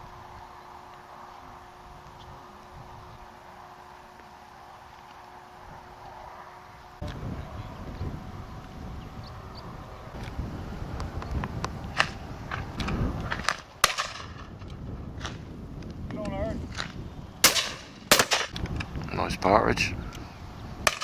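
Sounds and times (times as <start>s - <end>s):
shotguns firing: 17.4s - 18.5s.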